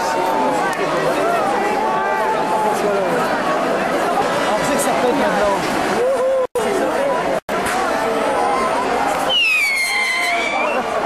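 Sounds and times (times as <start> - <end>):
crowd chatter: 0.0 - 11.0
firework whistle: 9.2 - 11.0.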